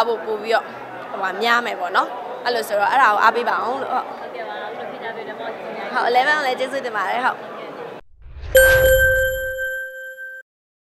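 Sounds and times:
bell-like ding: 8.5s - 10.4s.

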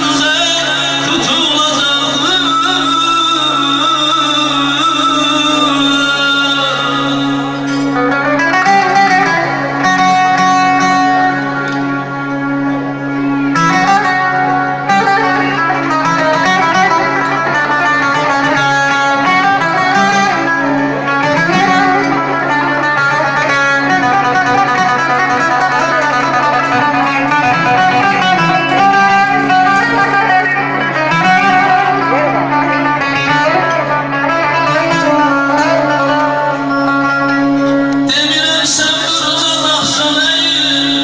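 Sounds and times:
plucked-string lead melody: 0.0s - 41.0s.

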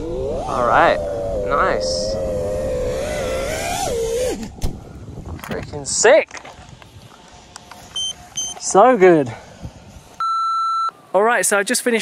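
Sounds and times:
drone motors whining: 0.0s - 5.2s.

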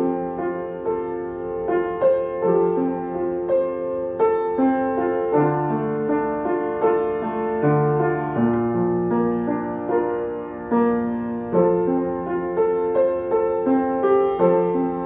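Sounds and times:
gentle piano chords: 0.0s - 15.0s.

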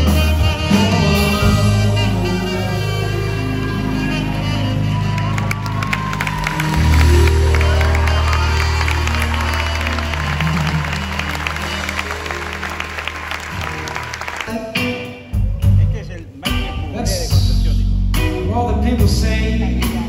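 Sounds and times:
live band holding a chord: 0.0s - 20.0s
audience applauding: 3.4s - 15.2s.

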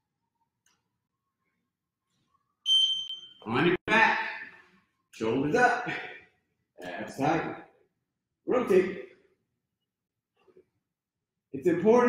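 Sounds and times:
high electronic beep: 2.7s - 3.4s.

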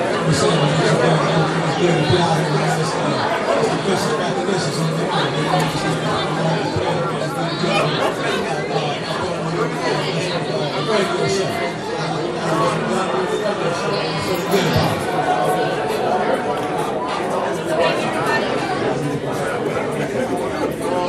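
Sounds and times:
overlapping chatter of voices: 0.0s - 21.0s.

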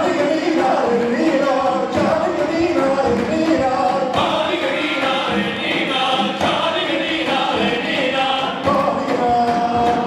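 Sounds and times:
men singing folk song: 0.0s - 10.0s.

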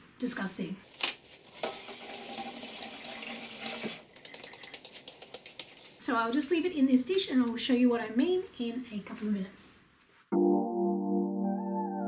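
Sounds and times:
kitchen tap running: 1.5s - 5.6s
wet brush bristles ticking on ceramic: 4.1s - 6.1s.

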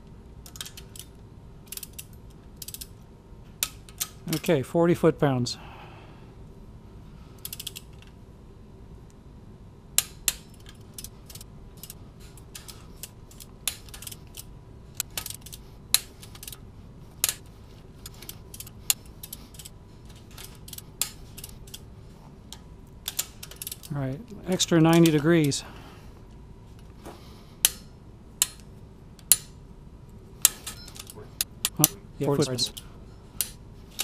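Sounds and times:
torque wrench ratchet clicks: 7.4s - 8.0s.

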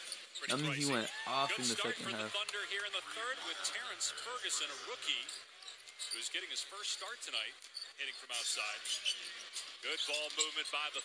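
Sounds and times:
people talking: 0.4s - 5.1s.

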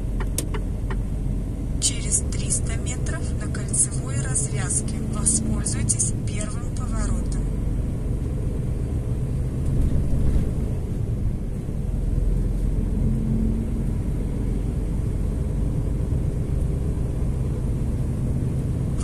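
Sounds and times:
truck engine and road rumble: 0.0s - 19.0s.

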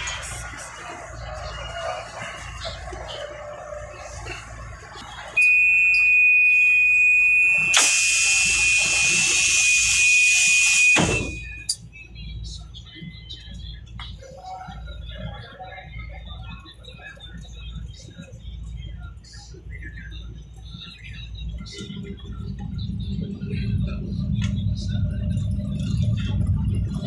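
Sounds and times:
door warning buzzer: 5.4s - 11.8s
loud hiss: 7.7s - 11.8s
train doors closing thump: 11.0s - 11.6s.

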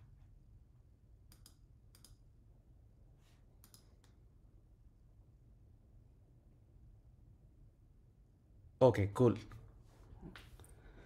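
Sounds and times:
computer mouse clicks: 1.3s - 2.2s, 3.6s - 4.2s.

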